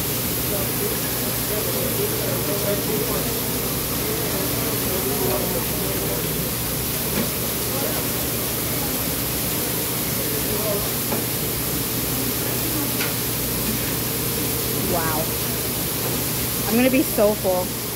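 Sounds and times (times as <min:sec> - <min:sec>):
meat sizzling on a griddle: 0:00.0 - 0:17.9.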